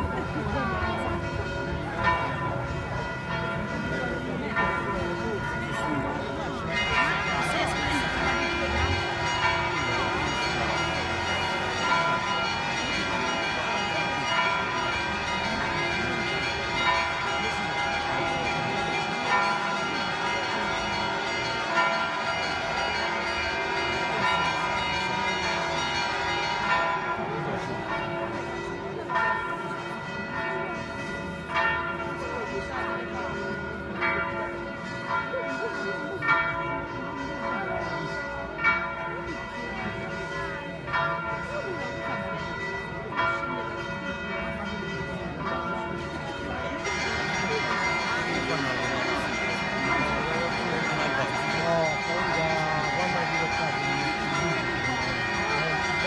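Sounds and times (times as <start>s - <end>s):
church bells pealing: 0.0s - 56.0s.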